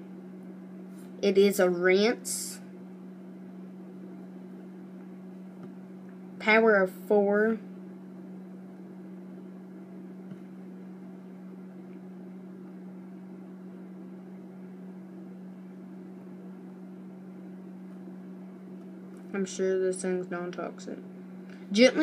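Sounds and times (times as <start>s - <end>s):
appliance humming with hiss: 0.0s - 22.0s.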